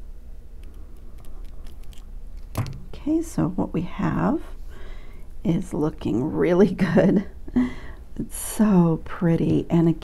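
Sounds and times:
woman speaking: 2.9s - 4.6s, 5.4s - 7.3s, 8.2s - 10.0s.

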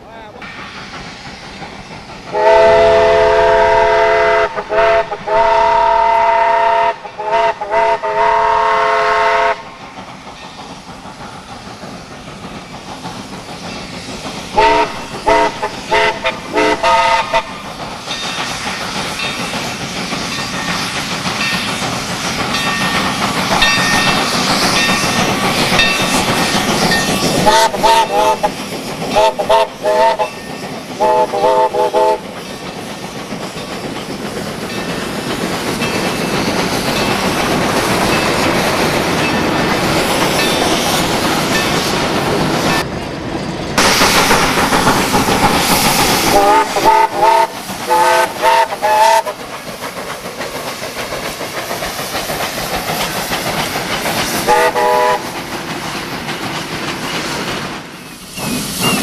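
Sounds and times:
locomotive working: 0.0s - 59.0s
steam locomotive whistle blasts: 2.3s - 9.7s, 14.6s - 17.6s, 27.4s - 28.5s, 29.2s - 30.4s, 31.0s - 32.2s, 46.2s - 49.4s, 54.5s - 55.3s.

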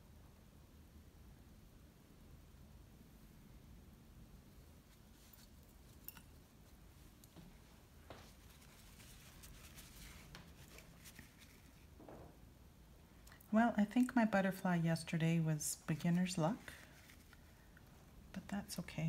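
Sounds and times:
rustling of small objects: 4.8s - 12.4s.

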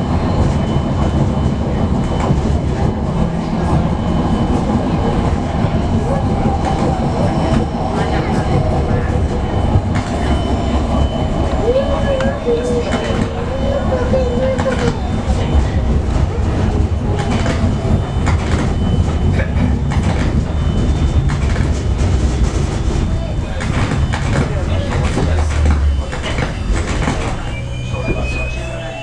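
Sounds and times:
train rumbling: 0.0s - 29.0s.

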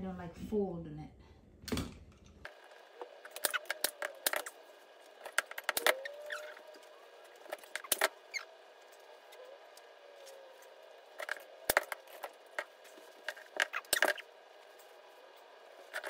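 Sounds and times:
faint squeak: 5.8s - 8.6s.

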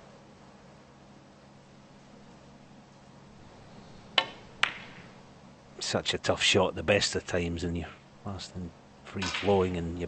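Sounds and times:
low steady hum: 0.0s - 10.0s
snooker ball clicks: 4.2s - 5.2s, 9.2s - 9.8s.

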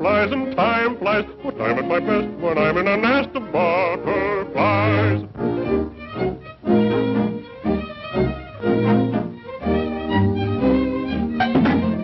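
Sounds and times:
orchestral cartoon music: 0.0s - 12.0s.

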